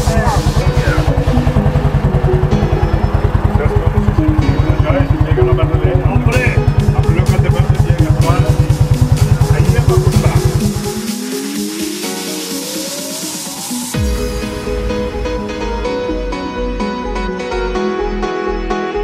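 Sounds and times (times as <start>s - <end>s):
voices: 0.0s - 11.6s
motorcycle engine idling: 0.0s - 11.7s
music: 0.0s - 19.0s.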